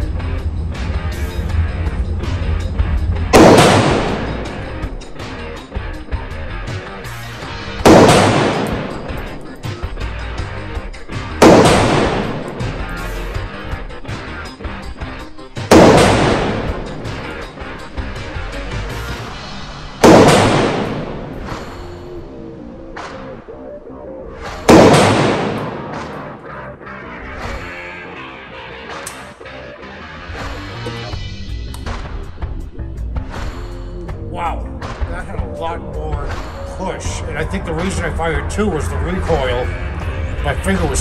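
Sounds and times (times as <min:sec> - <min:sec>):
background music: 0:00.0 - 0:41.0
rifle shots with echo: 0:03.3 - 0:05.2, 0:07.8 - 0:09.6, 0:11.4 - 0:12.9, 0:15.7 - 0:17.5, 0:20.0 - 0:21.7, 0:24.6 - 0:26.4.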